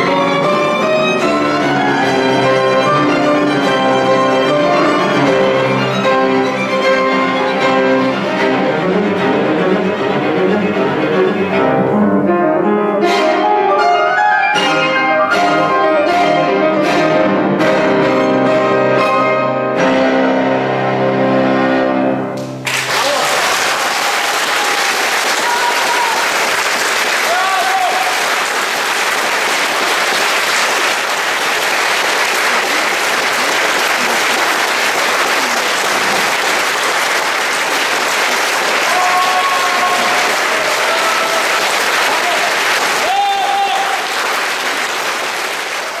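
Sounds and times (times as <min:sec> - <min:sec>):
audience applause: 0:22.6 - 0:46.0.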